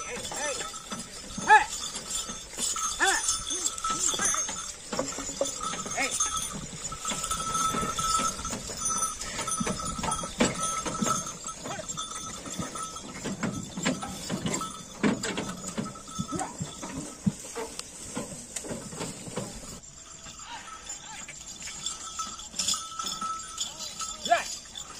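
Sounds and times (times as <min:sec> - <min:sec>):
cart knocking and clattering: 0:00.0 - 0:24.9
hooves clattering: 0:00.0 - 0:24.9.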